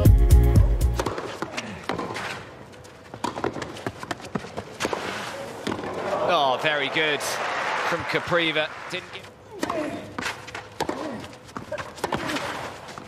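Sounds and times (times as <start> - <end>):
music with heavy bass: 0.0 - 1.0
players' footsteps on clay: 1.0 - 5.9, 9.0 - 13.0
racquet striking ball: 3.2 - 6.0.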